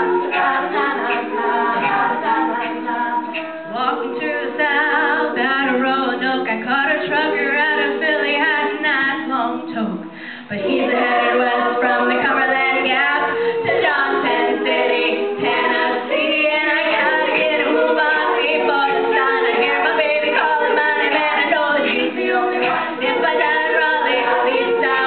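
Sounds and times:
women singing a cappella: 0.0 - 25.0.

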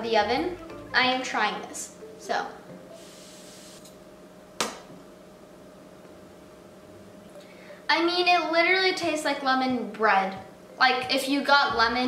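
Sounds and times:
faint steady hum: 0.0 - 12.0.

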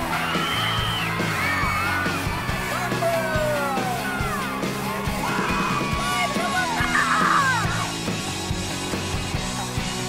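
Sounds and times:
upbeat rock music: 0.0 - 10.0
girls screaming and yelling: 0.1 - 2.8, 5.1 - 8.0.

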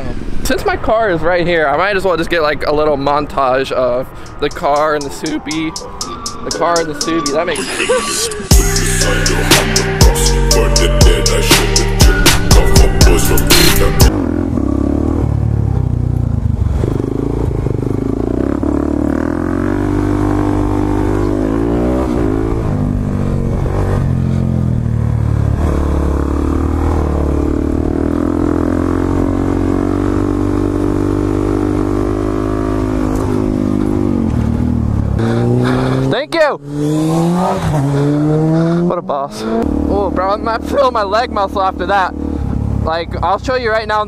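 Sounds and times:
motorcycle engine revving: 8.5 - 44.0.

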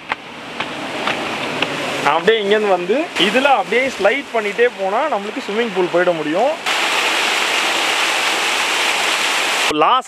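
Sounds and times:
waterfall splashing into pool: 2.0 - 9.8.

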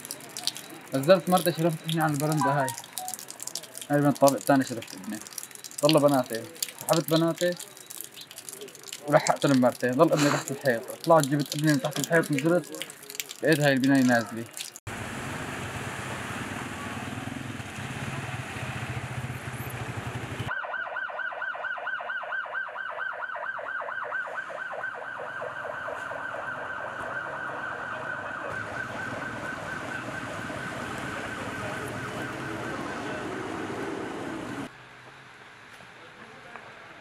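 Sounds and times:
emergency siren wailing: 1.5 - 8.6, 20.5 - 34.7.

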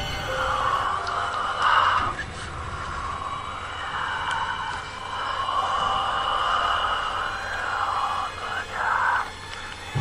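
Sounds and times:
eerie drone with hiss: 0.0 - 10.0.

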